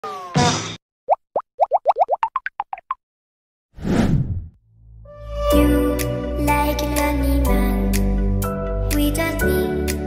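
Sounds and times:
rising cartoon plops: 1.1s - 3.0s.

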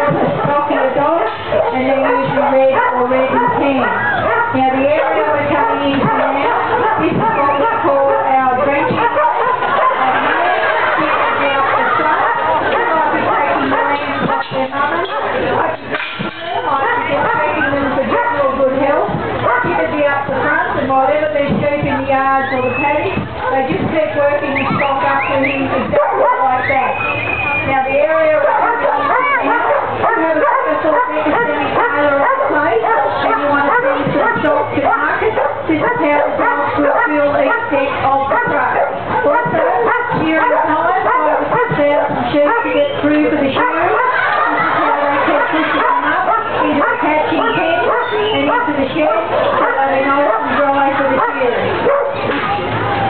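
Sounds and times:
people talking: 0.0s - 53.0s
dog barking: 0.1s - 15.9s, 16.5s - 20.6s, 24.5s - 27.6s, 28.2s - 53.0s.

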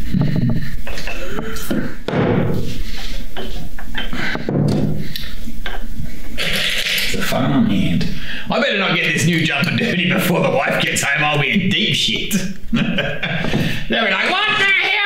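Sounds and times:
man talking and exclaiming: 7.2s - 12.6s, 13.9s - 15.0s.

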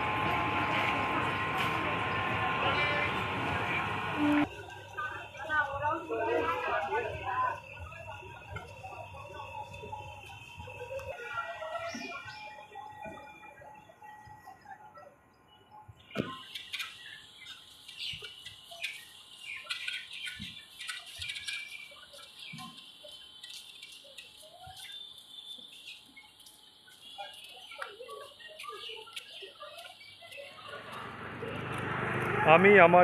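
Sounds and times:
small birds chirping: 15.3s - 32.3s.

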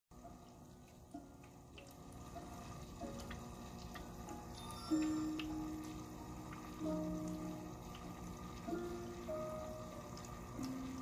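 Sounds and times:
water fountain trickling: 0.1s - 11.0s
water drops plinking: 0.2s - 11.0s.

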